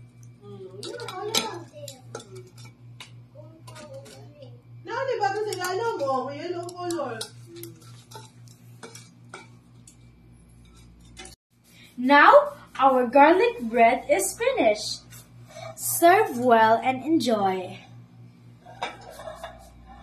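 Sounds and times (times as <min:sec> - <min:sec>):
low steady hum: 0:00.0 - 0:20.0
metal tongs clacking on tray: 0:00.8 - 0:04.2, 0:05.3 - 0:10.0.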